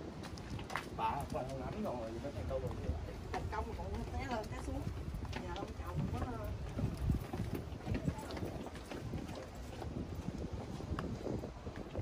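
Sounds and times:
footsteps on stone steps: 0.0 - 12.0
people talking: 1.0 - 6.6, 7.8 - 9.6.

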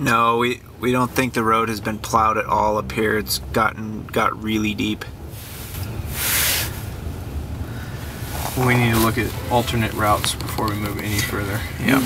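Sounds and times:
truck rumble inside cab: 0.0 - 12.0
brief hiss: 5.3 - 6.9.

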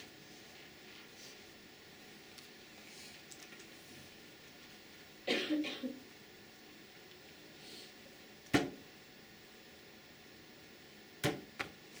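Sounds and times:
person coughing: 5.3 - 6.0.

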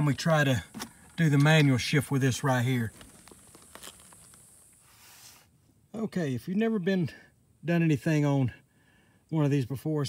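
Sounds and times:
faint clicks and rustles: 2.7 - 4.8.

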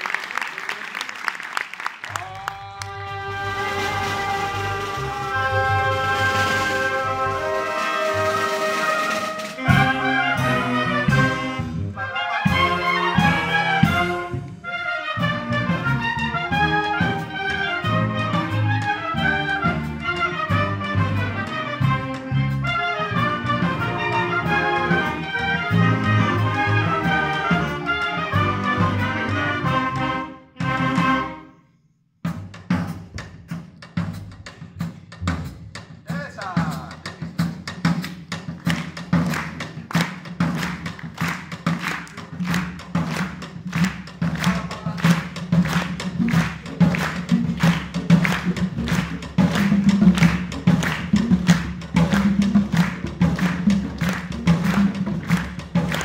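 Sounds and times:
concert band playing: 2.2 - 31.5, 32.3 - 56.0
drum kit strokes: 3.5 - 14.5.

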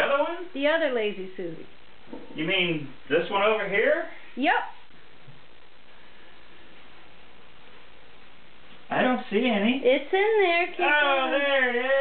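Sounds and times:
room noise hiss: 0.0 - 12.0
man's voice: 10.7 - 12.0.

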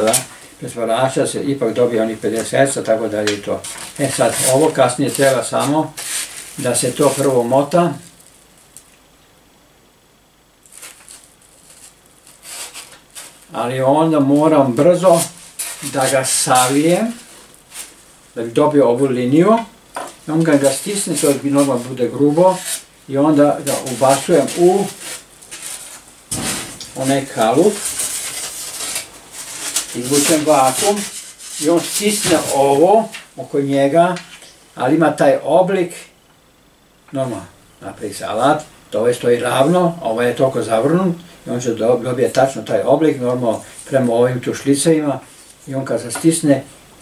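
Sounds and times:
rustling rubbing noise: 2.2 - 8.5, 10.6 - 18.2, 20.1 - 34.4
hands rubbing along a model: 27.0 - 32.6.

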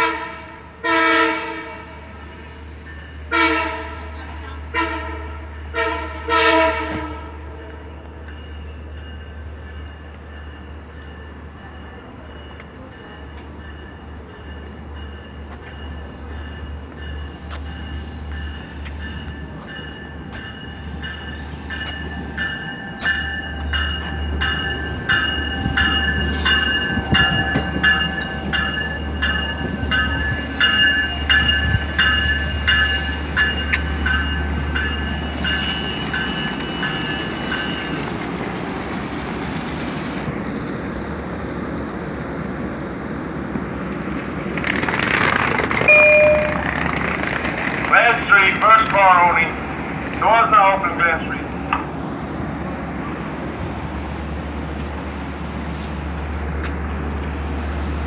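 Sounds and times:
standing train humming: 0.0 - 58.0
train rumble: 0.0 - 58.0
rhythmic bell ringing: 8.3 - 38.0, 45.9 - 46.8.

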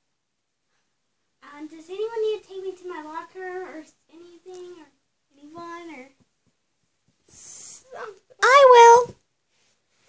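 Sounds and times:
girl's high-pitched vocal sound: 7.9 - 9.1.

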